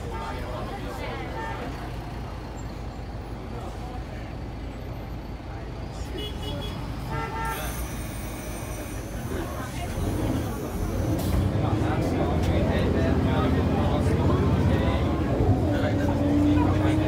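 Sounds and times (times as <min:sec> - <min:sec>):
bus diesel engine running: 0:00.0 - 0:17.0.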